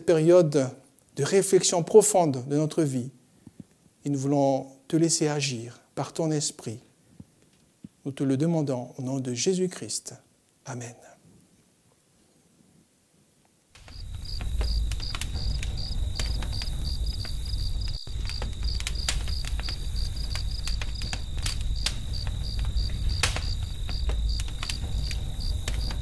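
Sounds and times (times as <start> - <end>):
crickets chirping: 13.8 - 26.0
low rumble: 13.8 - 26.0
scattered clicks: 13.8 - 26.0.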